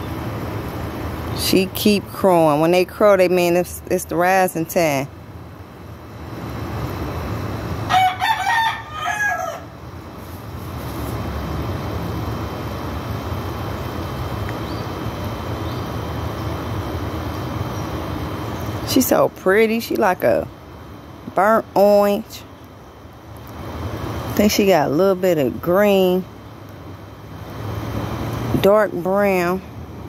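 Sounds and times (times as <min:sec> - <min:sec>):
rooster crowing: 0:07.9 - 0:09.8.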